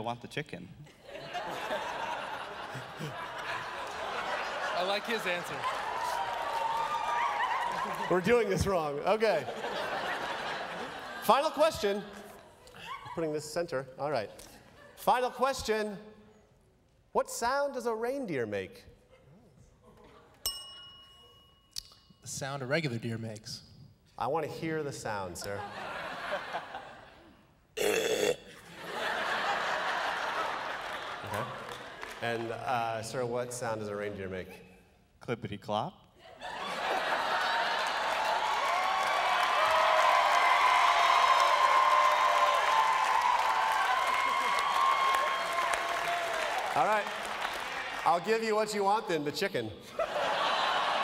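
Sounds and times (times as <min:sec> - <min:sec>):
audience laughing: 0:00.9 - 0:12.9, 0:25.4 - 0:27.4, 0:28.6 - 0:32.2, 0:36.4 - 0:38.4, 0:49.8 - 0:51.0
studio audience applauding: 0:02.0 - 0:12.1, 0:28.9 - 0:32.9, 0:36.6 - 0:48.6
desk service bell ding: 0:20.5 - 0:21.7.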